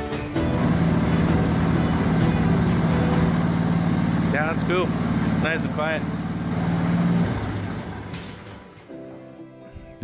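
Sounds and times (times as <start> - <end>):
small gasoline engine winding down: 0.4 - 8.6.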